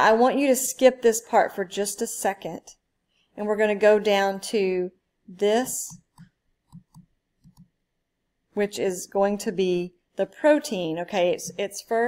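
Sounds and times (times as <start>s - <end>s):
stylus clicking on drawing tablet: 5.8s - 7.8s.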